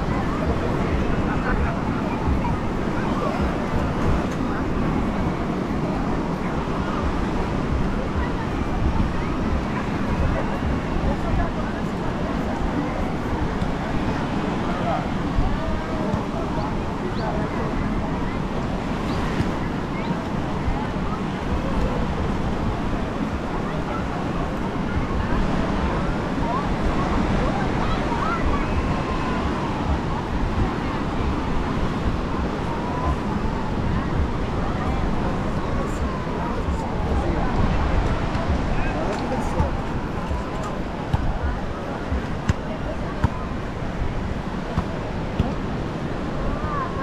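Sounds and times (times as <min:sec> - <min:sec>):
faint voices: 0:00.0 - 0:47.0
surf: 0:00.0 - 0:47.0
wind buffeting microphone: 0:00.0 - 0:47.0.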